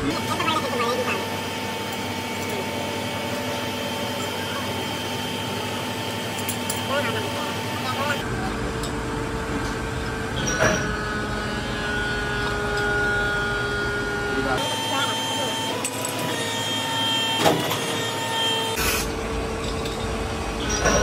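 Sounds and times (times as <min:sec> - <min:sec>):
machine hum: 0:00.0 - 0:21.0.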